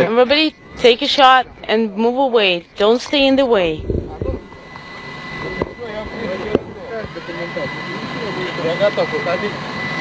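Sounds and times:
engine drone: 0:00.0 - 0:10.0
high whine: 0:00.0 - 0:10.0.

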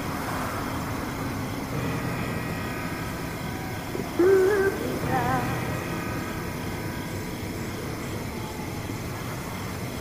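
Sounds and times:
faint hum: 0:00.0 - 0:10.0
low rumbling drone: 0:01.7 - 0:08.6.

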